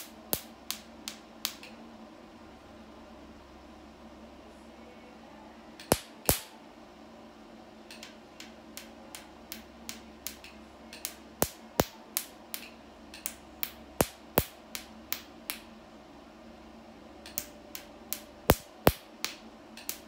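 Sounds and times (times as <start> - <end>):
laser pulses snapping clicks: 7.9 - 15.6, 17.2 - 20.0.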